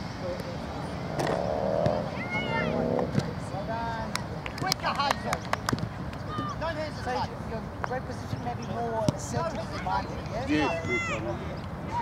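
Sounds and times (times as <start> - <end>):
outdoor field noise: 0.0 - 12.0.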